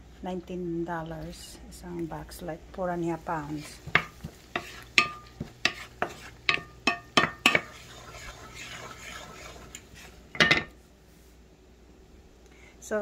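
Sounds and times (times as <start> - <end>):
butter and garlic sizzling: 3.0 - 10.5
wooden spatula tapping a pan: 3.8 - 7.7.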